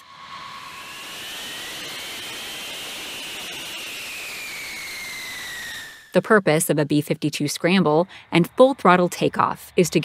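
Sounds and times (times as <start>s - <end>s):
jet engines whining: 0.0s - 10.0s.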